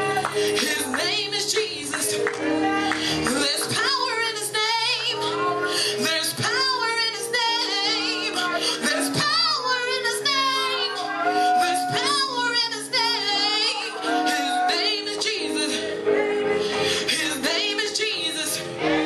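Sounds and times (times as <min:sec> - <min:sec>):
keyboard chords: 0:00.0 - 0:19.0
woman singing gospel: 0:00.0 - 0:19.0.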